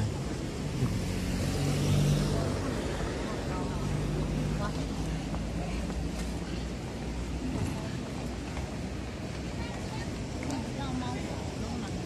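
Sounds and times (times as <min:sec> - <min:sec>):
faint voices of passers-by: 0:00.0 - 0:12.0
street noise: 0:00.0 - 0:12.0
car driving past: 0:00.7 - 0:04.6.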